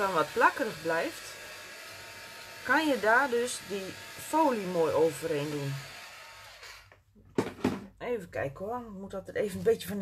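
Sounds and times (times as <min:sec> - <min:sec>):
heat tool fan hissing: 0:00.0 - 0:06.9.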